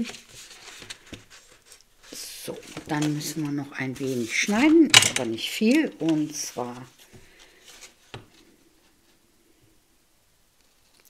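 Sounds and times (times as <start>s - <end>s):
cardstock rustling: 0.0s - 9.0s.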